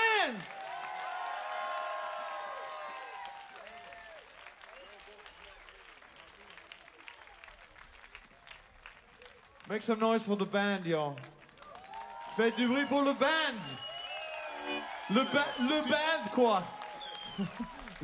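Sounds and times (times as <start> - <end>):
people whooping: 0.0 - 5.6, 11.6 - 18.0
audience cheering: 0.0 - 5.8, 11.6 - 18.0
audience clapping: 0.0 - 18.0.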